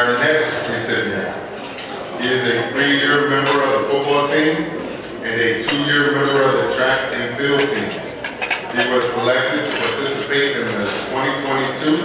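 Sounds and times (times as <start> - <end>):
cutlery and dishes clinking: 1.3 - 12.0.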